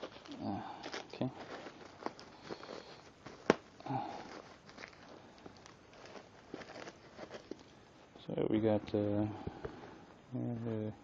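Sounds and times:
plastic bag crinkling and rustling: 0:00.0 - 0:07.8.

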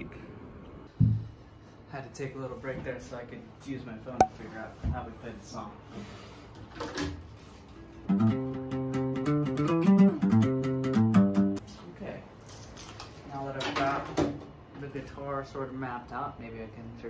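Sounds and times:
acoustic guitar notes and chords: 0:08.1 - 0:11.6.

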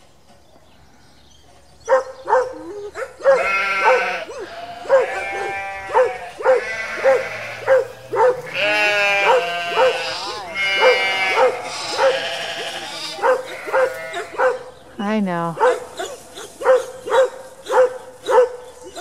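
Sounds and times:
dog barking: 0:01.8 - 0:14.8, 0:15.6 - 0:19.0
sheep bleating: 0:03.3 - 0:14.5.

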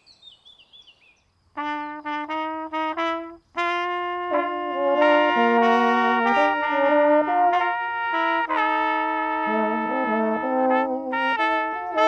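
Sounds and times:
faint birdsong: 0:00.0 - 0:03.7
brass ensemble playing: 0:01.6 - 0:12.0.

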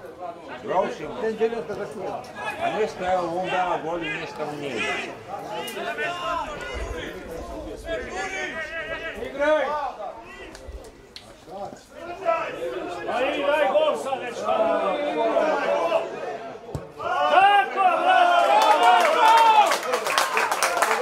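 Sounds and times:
spectators shouting: 0:02.3 - 0:10.6, 0:11.9 - 0:21.0.

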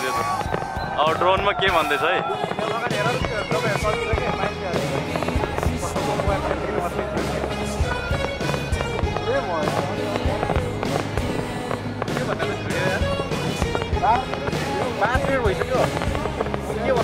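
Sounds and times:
fireworks bursting: 0:00.0 - 0:17.0
loud music: 0:00.0 - 0:17.0
voices: 0:00.0 - 0:17.0.

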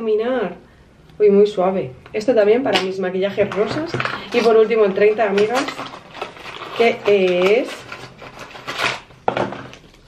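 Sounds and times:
paper packaging rustling: 0:03.4 - 0:10.0.

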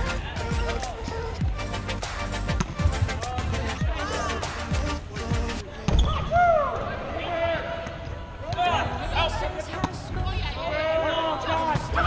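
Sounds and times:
players shouting: 0:03.0 - 0:05.4.

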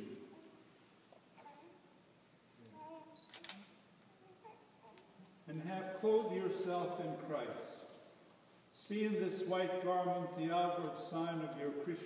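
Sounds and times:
camera shutter clicking: 0:03.2 - 0:03.7.

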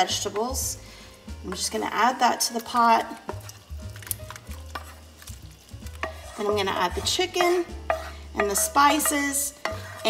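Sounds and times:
wooden spatula scraping skillet: 0:01.4 - 0:10.0
spatula tapping pan: 0:01.5 - 0:10.0.

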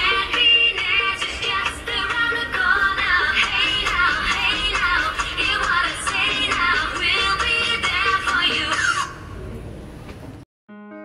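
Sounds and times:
song with high-pitched vocal: 0:00.0 - 0:09.3.

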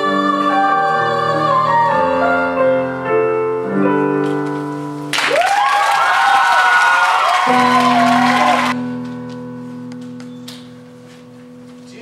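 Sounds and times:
audience applauding and cheering: 0:05.1 - 0:08.8
high-pitched whoops: 0:05.2 - 0:08.8.

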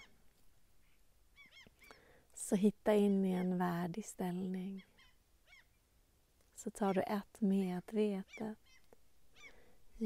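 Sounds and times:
faint distant bird calls: 0:00.0 - 0:02.3, 0:04.4 - 0:06.2, 0:08.1 - 0:10.0.

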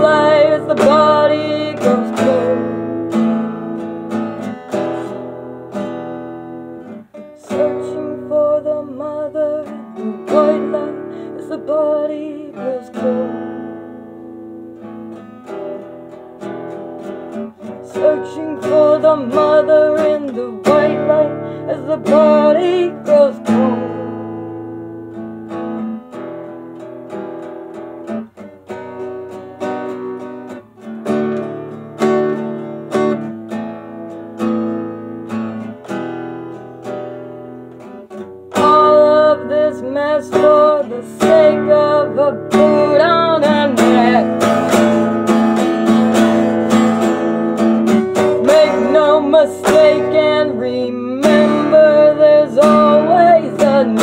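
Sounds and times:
person singing: 0:00.0 - 0:05.4, 0:07.1 - 0:14.6, 0:17.6 - 0:24.8, 0:38.5 - 0:54.0
acoustic guitar strumming: 0:00.0 - 0:54.0.

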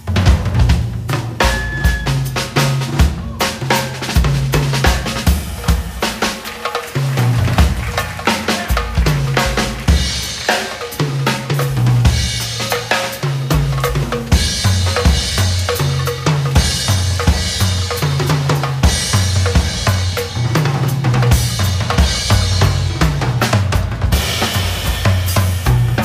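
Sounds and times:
jazz drum kit: 0:00.0 - 0:26.0.

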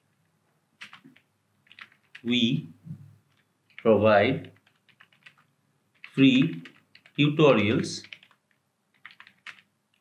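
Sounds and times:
faint keyboard typing: 0:00.0 - 0:02.4, 0:03.1 - 0:10.0.

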